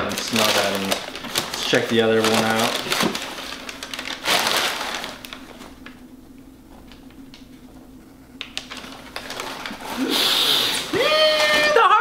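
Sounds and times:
paper wrapping rustling: 0.0s - 6.0s, 8.4s - 12.0s.

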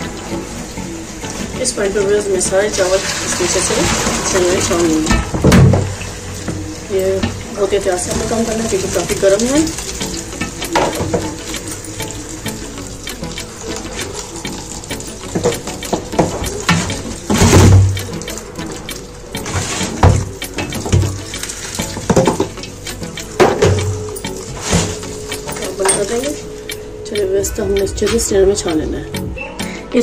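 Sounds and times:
water splashing and draining: 0.0s - 29.3s.

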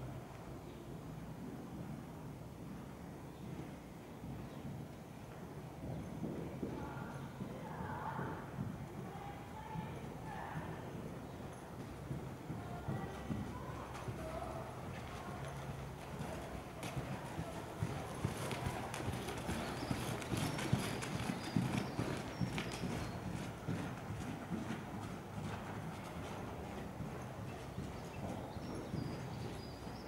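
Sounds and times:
horse hoofbeats on soft ground: 1.4s - 30.0s.

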